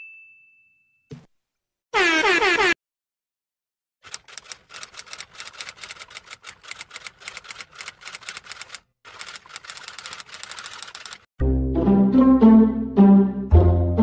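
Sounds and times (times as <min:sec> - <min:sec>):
typewriter keys clacking: 0:04.0 - 0:11.3.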